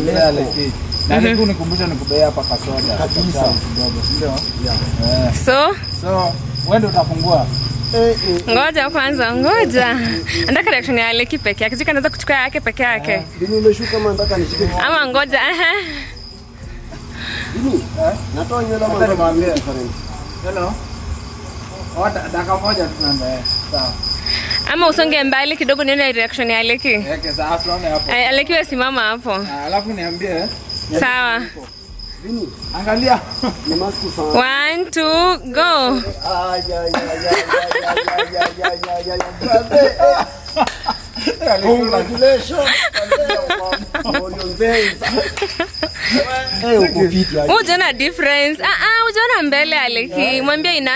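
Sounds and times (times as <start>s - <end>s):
excited men's voices: 0.0s - 5.4s, 6.0s - 11.3s, 12.8s - 15.7s, 29.5s - 34.4s, 35.2s - 47.8s
cricket chirping: 0.0s - 50.9s
burst of laughter: 37.0s - 46.5s.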